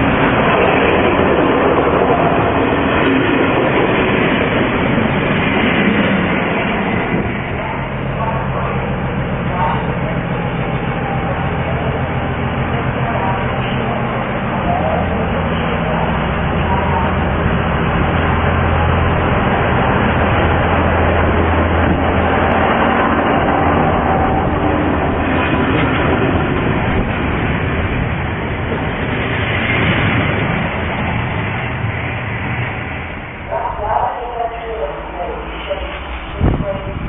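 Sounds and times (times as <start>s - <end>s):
diesel train engine drone: 0.0s - 37.0s
wheels rumbling on rails: 0.0s - 37.0s.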